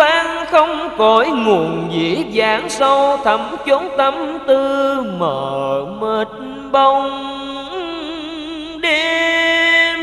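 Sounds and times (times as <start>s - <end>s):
man singing with vibrato: 0.0s - 10.0s.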